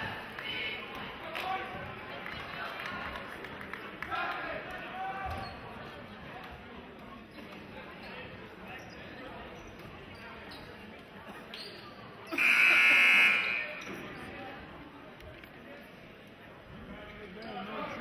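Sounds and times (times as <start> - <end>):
crowd chatter: 0.0 - 18.0
scoreboard horn blast: 12.4 - 13.8.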